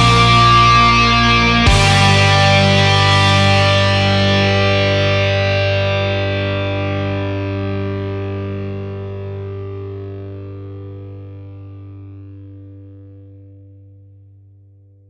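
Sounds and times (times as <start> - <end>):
distorted electric guitar chord: 0.0 - 13.8.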